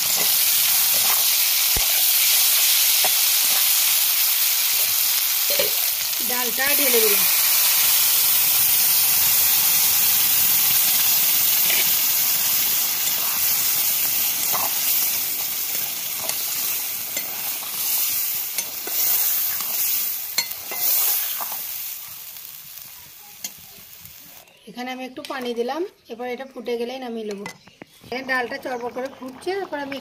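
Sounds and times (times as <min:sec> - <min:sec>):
food sizzling in a wok: 0:00.0 - 0:24.5.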